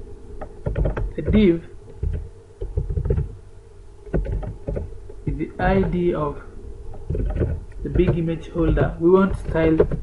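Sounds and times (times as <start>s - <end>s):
steady low hum: 0.0s - 10.0s
keyboard keystrokes: 0.4s - 3.3s, 4.1s - 4.9s, 7.0s - 10.0s.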